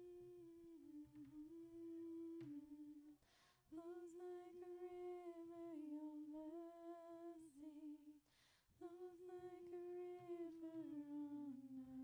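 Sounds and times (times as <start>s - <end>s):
woman humming: 0.0s - 3.2s.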